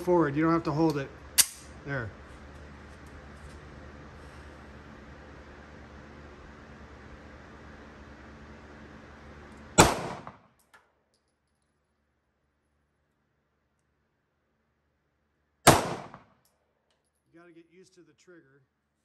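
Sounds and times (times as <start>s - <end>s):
pistol shots with echo: 9.8s - 10.4s, 15.7s - 16.3s.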